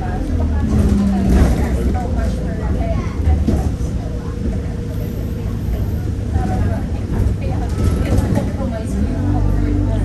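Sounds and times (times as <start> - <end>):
bus engine and road rumble: 0.0 - 10.0
passengers talking: 0.0 - 10.0.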